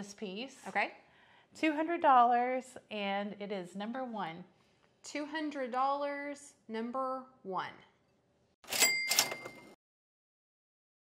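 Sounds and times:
cash register bell ringing: 8.6 - 9.8
cash register clatter: 8.6 - 9.8.

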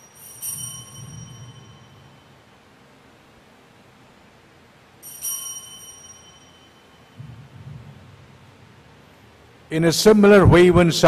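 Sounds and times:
altar bell strike: 0.0 - 2.6, 5.0 - 8.6.

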